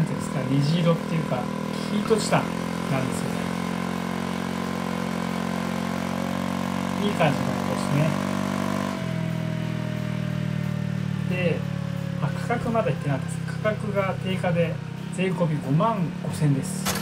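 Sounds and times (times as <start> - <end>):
scooter engine idling: 0.0 - 8.1.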